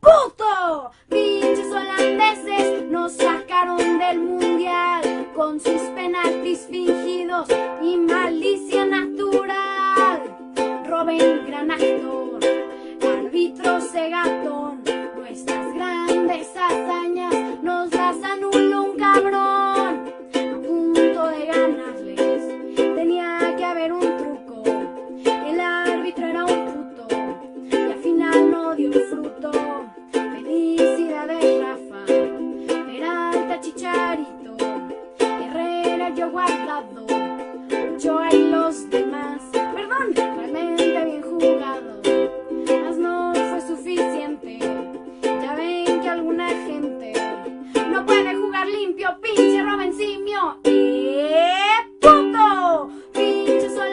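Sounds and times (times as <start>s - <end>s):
ukulele strumming: 1.0s - 53.9s.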